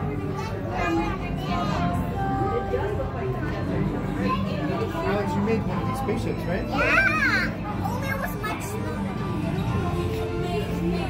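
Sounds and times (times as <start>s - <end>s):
chatter of people and children: 0.0s - 11.0s.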